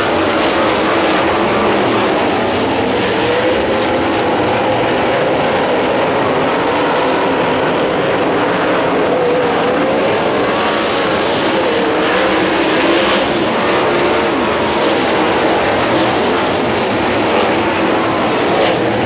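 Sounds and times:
race car engines: 0:00.0 - 0:19.0.

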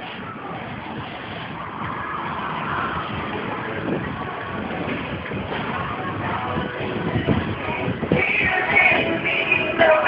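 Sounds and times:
bicycle tyres rolling on pavement: 0:00.0 - 0:09.8
wind on microphone: 0:00.0 - 0:10.0.

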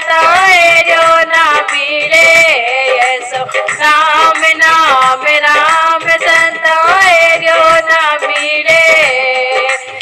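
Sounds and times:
person singing devotional song: 0:00.0 - 0:10.0.

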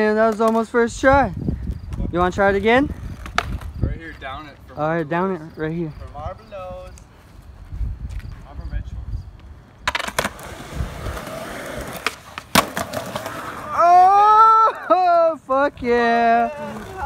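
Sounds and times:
skateboard wheels rolling: 0:02.3 - 0:04.6, 0:09.4 - 0:17.0
skateboard clacks: 0:03.2 - 0:03.7, 0:09.8 - 0:13.7
person yelling: 0:13.7 - 0:17.0.

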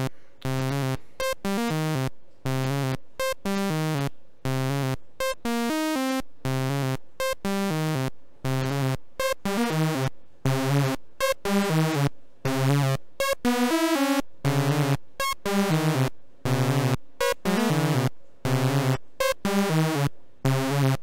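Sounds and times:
sawtooth synthesizer sequence: 0:00.0 - 0:21.0.

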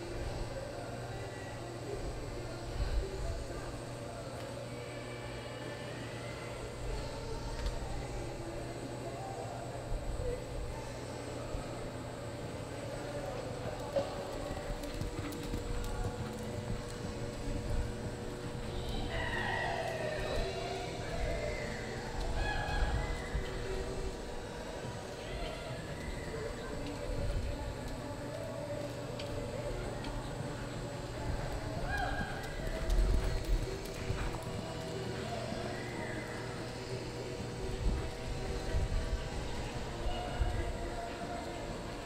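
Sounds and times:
steady hum: 0:00.0 - 0:42.0
horse hoofbeats on dirt: 0:13.0 - 0:22.7, 0:24.7 - 0:39.4.

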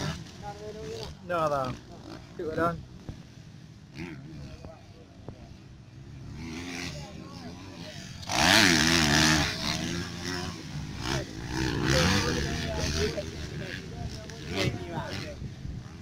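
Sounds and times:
dirt bike engines revving: 0:00.0 - 0:16.0
voices: 0:00.0 - 0:16.0.

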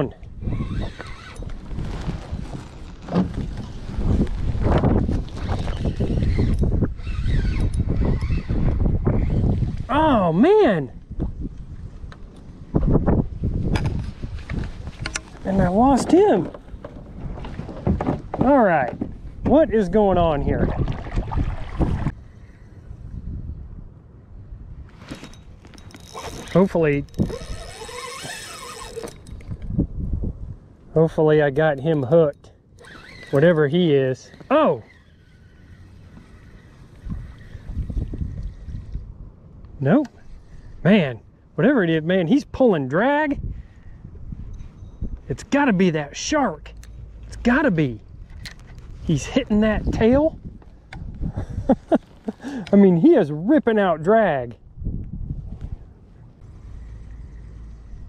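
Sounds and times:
wind buffeting microphone: 0:00.2 - 0:31.2, 0:34.4 - 0:42.6, 0:43.2 - 0:53.2, 0:54.5 - 0:58.0
fishing reel whirring squeal: 0:00.4 - 0:01.6, 0:05.3 - 0:09.6, 0:25.2 - 0:29.6, 0:32.8 - 0:39.0, 0:40.2 - 0:40.8, 0:56.4 - 0:58.0
fishing gear rustling and knocking: 0:00.6 - 0:08.1, 0:13.6 - 0:19.6, 0:24.9 - 0:29.8, 0:46.7 - 0:49.6.

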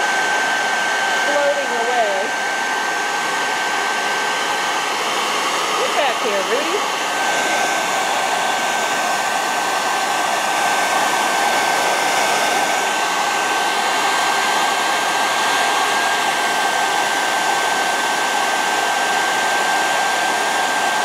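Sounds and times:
blow dryer running with high whine: 0:00.0 - 0:21.0.

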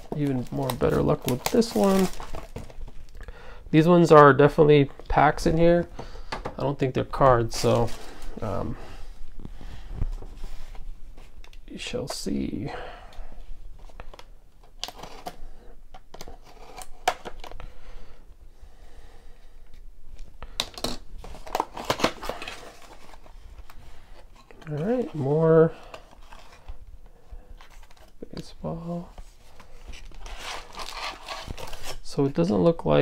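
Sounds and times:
foil packs crinkling: 0:00.0 - 0:03.2, 0:29.6 - 0:32.2.

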